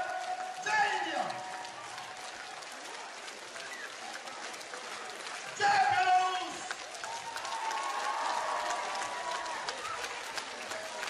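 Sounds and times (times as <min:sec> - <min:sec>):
audience clapping: 0:00.0 - 0:11.0.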